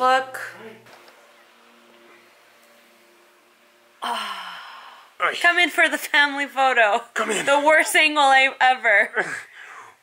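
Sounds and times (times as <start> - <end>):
low even hum: 0.0 - 7.9
faint steady hiss: 0.0 - 10.0.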